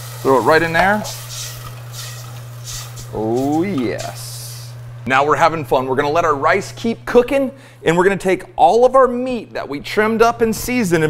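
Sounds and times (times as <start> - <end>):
spatula stirring: 0.0 - 4.4
stock sizzling and bubbling in pot: 0.0 - 4.9
steady low hum: 0.0 - 11.0.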